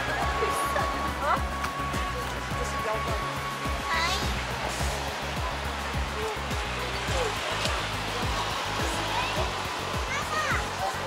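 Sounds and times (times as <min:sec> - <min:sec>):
background music with bass: 0:00.0 - 0:11.0
steady hiss: 0:00.0 - 0:11.0.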